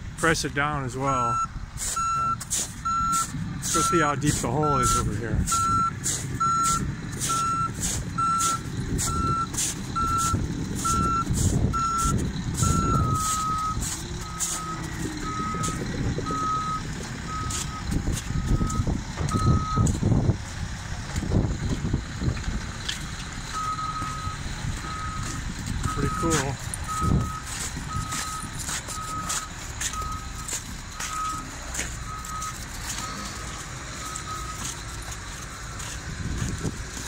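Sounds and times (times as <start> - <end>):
diesel engines rumbling: 0.0 - 37.0
reversing alarms beeping: 1.1 - 20.0, 23.5 - 37.0
lower-pitched slower alarm: 1.2 - 20.0, 23.5 - 36.5.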